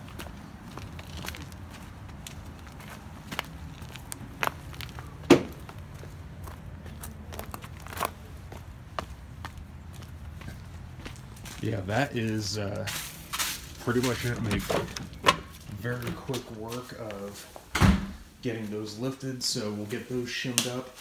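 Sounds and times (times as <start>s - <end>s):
footsteps on dirt and leaves: 0.0s - 17.7s.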